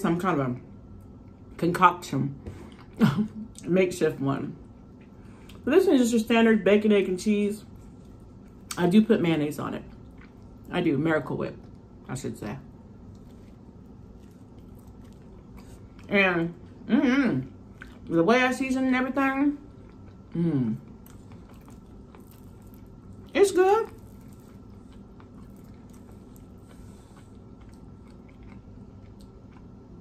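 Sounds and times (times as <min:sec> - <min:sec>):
soft chewing: 0:04.6 - 0:05.6, 0:07.6 - 0:08.9, 0:09.8 - 0:10.8, 0:12.8 - 0:18.1, 0:19.5 - 0:30.0.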